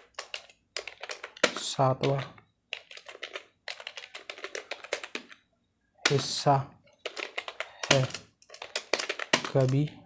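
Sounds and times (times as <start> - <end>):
fast typing on keyboard: 0.0 - 5.4, 6.1 - 10.0.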